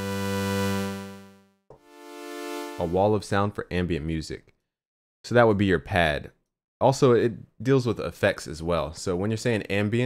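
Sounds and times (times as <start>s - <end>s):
synthesizer pad notes: 0.0s - 3.1s.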